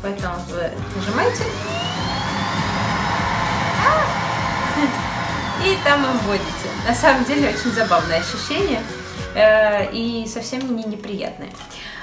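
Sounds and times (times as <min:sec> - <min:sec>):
vacuum cleaner running: 0:00.8 - 0:09.5.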